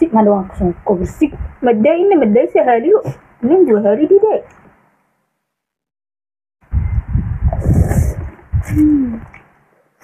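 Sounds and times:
slurping noodles: 0:07.5 - 0:08.4.

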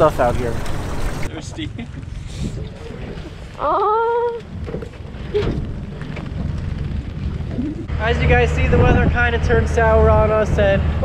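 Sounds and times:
steady low rumble: 0:00.0 - 0:11.0
person laughing: 0:01.3 - 0:02.2.

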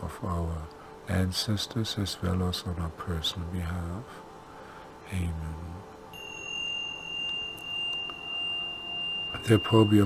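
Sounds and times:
steady high-pitched tone: 0:00.0 - 0:10.0.

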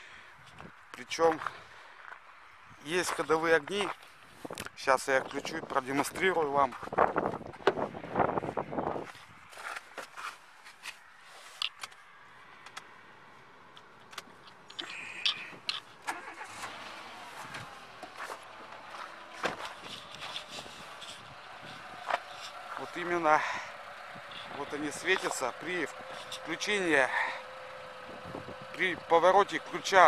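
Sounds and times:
ignition key turning: 0:13.8 - 0:16.8
car engine idling: 0:13.8 - 0:30.0.

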